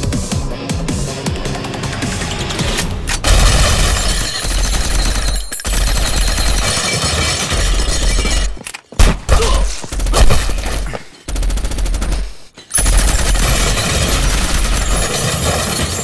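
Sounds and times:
electronic film score: 0.0s - 8.7s
rapid automatic gunfire: 3.2s - 8.5s, 9.8s - 16.0s.

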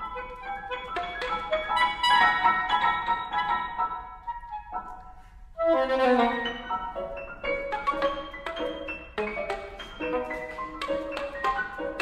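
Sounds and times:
grand piano: 0.0s - 12.0s.

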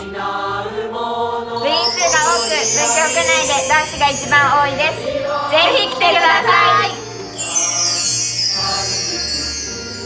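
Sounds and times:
held musical chord: 1.6s - 9.1s
bar chimes shimmer: 1.6s - 10.0s.

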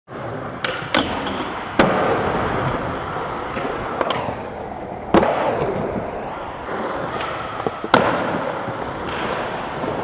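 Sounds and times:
skateboard clacking on ground: 0.1s - 6.0s, 7.0s - 10.0s
skateboard wheels rolling on concrete: 0.1s - 10.0s.

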